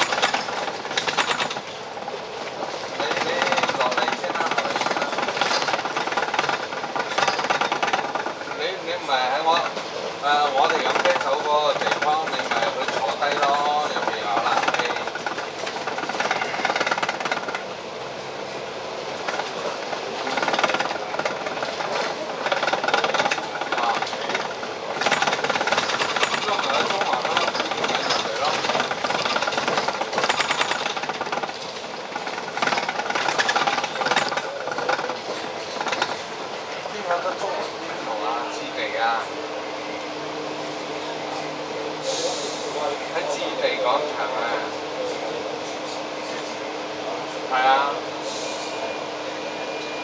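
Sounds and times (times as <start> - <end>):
bus engine and road noise: 0.0 - 50.0
passengers' voices: 0.0 - 50.0.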